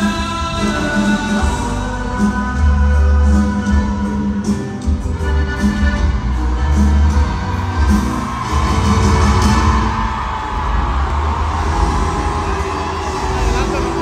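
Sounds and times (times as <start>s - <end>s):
crowd voices: 0.0s - 14.0s
live band with heavy bass: 0.0s - 14.0s.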